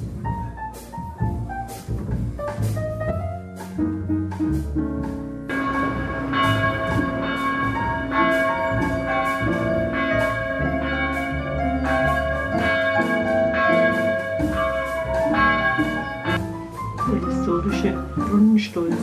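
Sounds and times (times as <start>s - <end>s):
church bells ringing: 5.5s - 16.6s.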